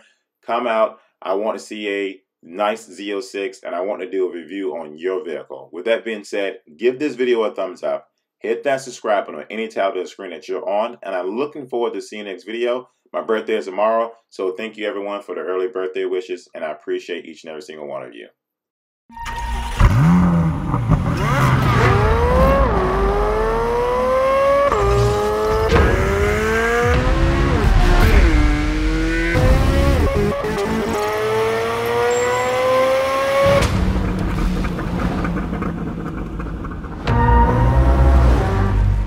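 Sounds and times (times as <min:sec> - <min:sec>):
sports car engine accelerating: 0:19.6 - 0:39.0
music: 0:37.1 - 0:39.0.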